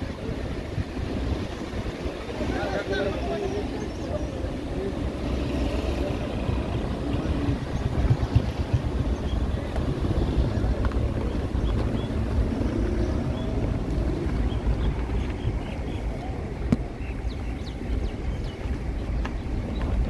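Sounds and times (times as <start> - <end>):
wind and road noise: 0.0 - 20.0.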